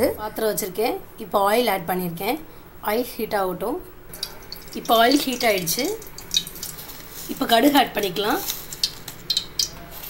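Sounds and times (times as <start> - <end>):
person speaking: 0.0 - 8.7
water dripping: 4.1 - 9.8.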